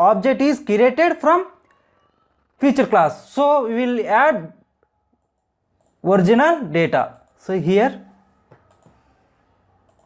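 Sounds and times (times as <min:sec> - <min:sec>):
computer mouse click: 0:05.2 - 0:06.0, 0:08.4 - 0:09.2, 0:09.8 - 0:10.0.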